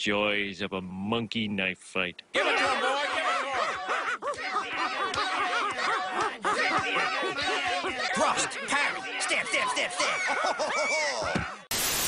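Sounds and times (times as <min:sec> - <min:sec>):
high voices chattering and laughing: 0:02.4 - 0:11.7
rising and falling cries: 0:02.4 - 0:11.8.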